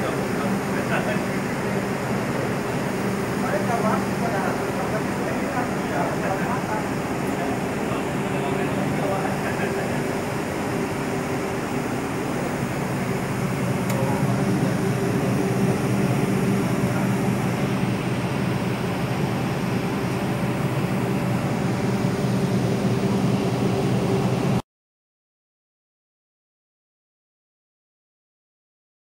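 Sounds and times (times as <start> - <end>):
diesel generator engines droning: 0.0 - 24.6.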